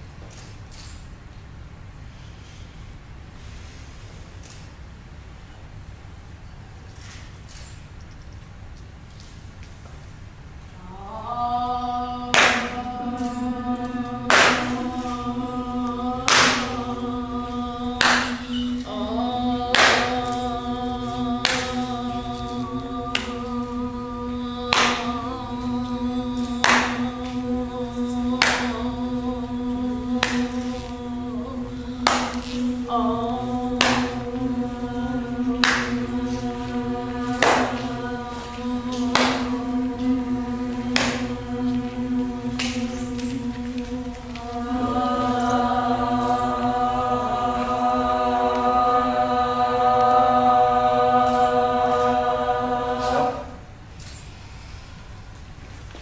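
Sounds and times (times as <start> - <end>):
voices humming one note: 10.8 - 53.8.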